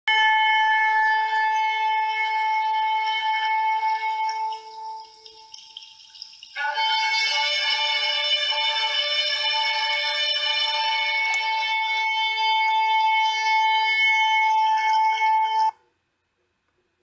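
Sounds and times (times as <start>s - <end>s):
ram's horn long note: 6.6s - 15.6s.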